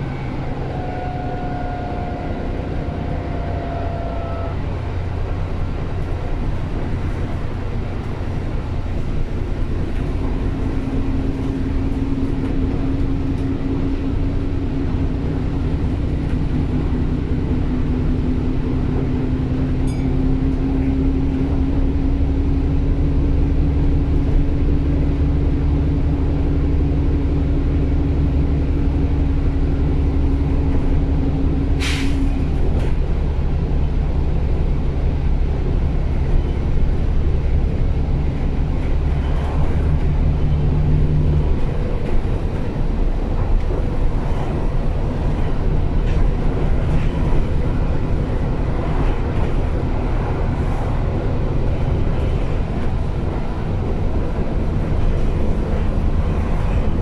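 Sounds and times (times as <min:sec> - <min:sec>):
bus engine drone: 0:00.0 - 0:57.0
short sharp hiss: 0:31.8 - 0:32.3.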